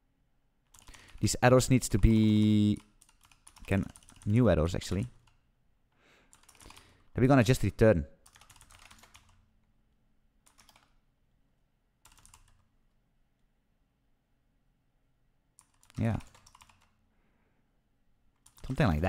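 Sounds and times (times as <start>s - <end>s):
computer keyboard typing: 0.7s - 1.3s, 2.0s - 5.4s, 6.3s - 7.1s, 8.2s - 9.5s, 10.4s - 11.0s, 12.0s - 12.7s, 15.6s - 17.0s, 18.4s - 19.0s.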